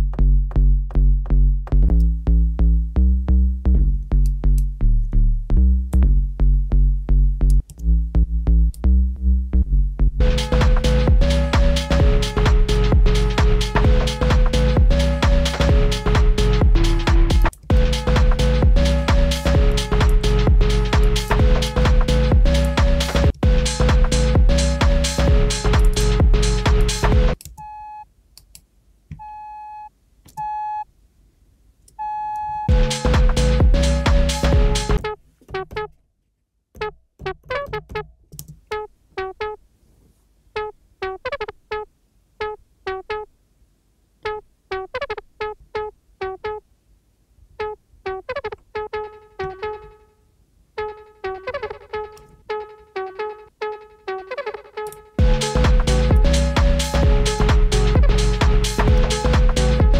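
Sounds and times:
electronic beat with drums: 0:10.2 - 0:27.4, 0:32.6 - 0:35.0, 0:54.3 - 0:59.9
plucky synth lead with delay echoes: 0:10.2 - 0:27.4, 0:50.8 - 0:59.9.

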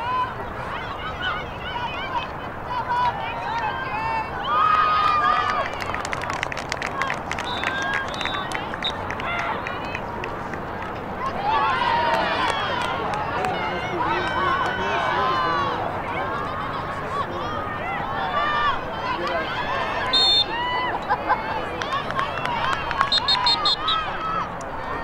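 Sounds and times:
players shouting: 0:00.0 - 0:06.2, 0:06.9 - 0:25.0.

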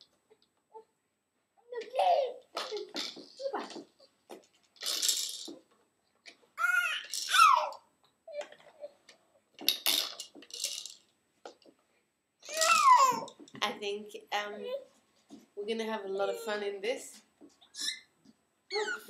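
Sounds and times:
plastic toys clicking and rattling: 0:01.8 - 0:07.8, 0:08.4 - 0:08.8, 0:09.6 - 0:11.7, 0:12.4 - 0:13.6.

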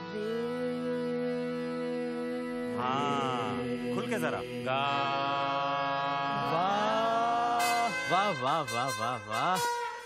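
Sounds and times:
harmonium drone: 0:00.0 - 0:10.0
man singing long note: 0:00.0 - 0:10.0.

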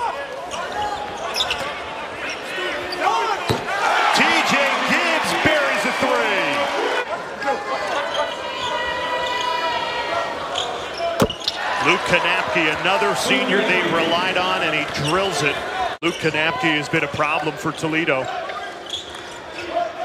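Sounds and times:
arena crowd noise: 0:00.0 - 0:20.0
sneakers squeaking on hardwood: 0:00.5 - 0:01.8, 0:10.6 - 0:11.7
basketball bouncing: 0:11.2 - 0:11.6.

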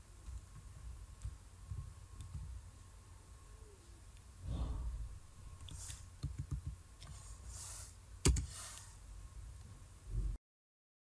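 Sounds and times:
soft hiss: 0:00.0 - 0:10.3
mouse and keyboard clicks: 0:05.6 - 0:07.2, 0:08.2 - 0:08.9.

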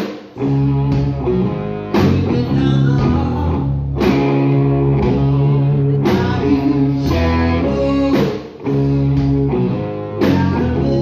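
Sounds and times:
rock band playing: 0:00.0 - 0:11.0
ringing electric guitar chords: 0:00.4 - 0:11.0.

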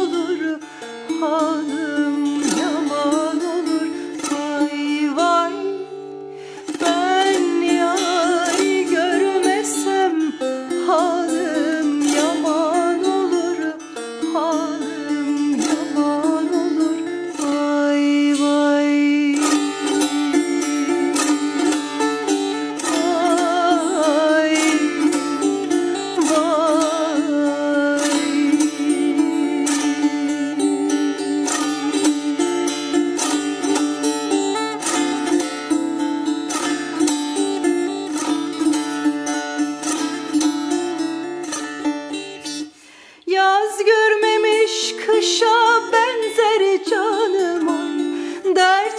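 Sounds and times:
plucked lute with drone: 0:00.0 - 0:42.8, 0:43.8 - 0:48.9
woman singing folk melody: 0:00.0 - 0:48.9.

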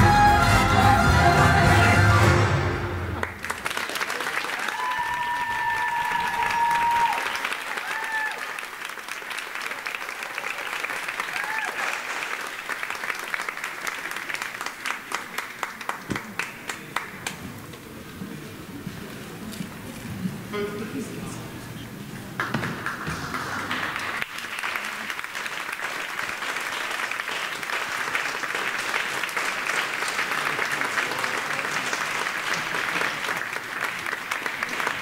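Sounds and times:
dance music: 0:00.0 - 0:02.8
audience applauding: 0:00.8 - 0:18.0, 0:22.4 - 0:35.0
audience cheering: 0:03.1 - 0:13.5
rhythmic clapping in unison: 0:03.1 - 0:17.4, 0:22.4 - 0:35.0.

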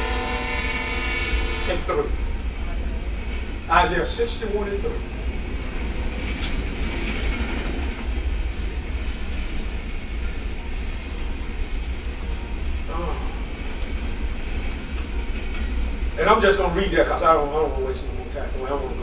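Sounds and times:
low rumble: 0:00.0 - 0:19.0.

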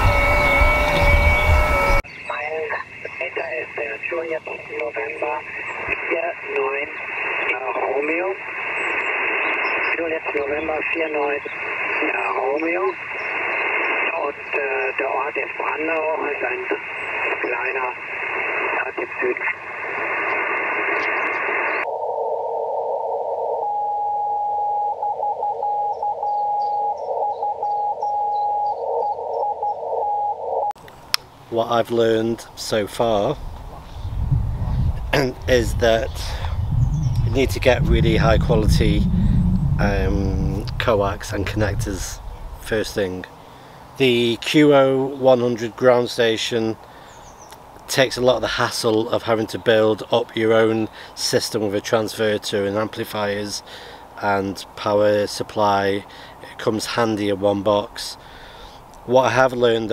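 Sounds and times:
muffled radio voice: 0:00.0 - 0:08.4, 0:09.8 - 0:13.0, 0:14.0 - 0:18.0, 0:18.6 - 0:19.6, 0:35.0 - 0:36.6, 0:37.2 - 0:39.1, 0:39.8 - 0:43.2
radio hiss: 0:00.0 - 0:22.1, 0:31.5 - 0:34.1, 0:34.7 - 0:59.9
steady tones: 0:33.1 - 0:43.1.

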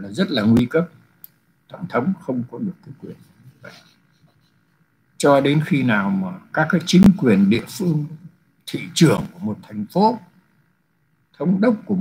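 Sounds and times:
man speaking: 0:00.0 - 0:00.9, 0:01.7 - 0:03.8, 0:05.2 - 0:10.3, 0:11.4 - 0:12.0.

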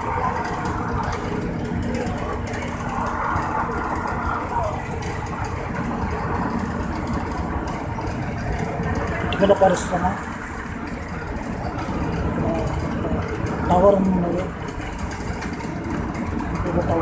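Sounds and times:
tyre and engine noise: 0:00.0 - 0:17.0.

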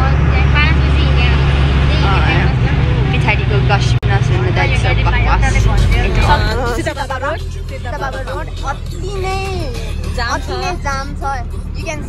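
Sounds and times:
bus engine droning: 0:00.0 - 0:12.0
voices: 0:00.0 - 0:12.0.

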